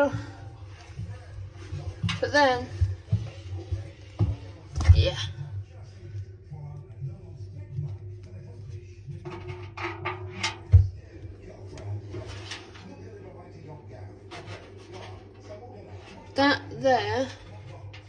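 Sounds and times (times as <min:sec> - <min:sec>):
steady low hum: 0:00.0 - 0:18.0
hand rubbing on metal drum: 0:09.1 - 0:13.0, 0:14.2 - 0:16.4.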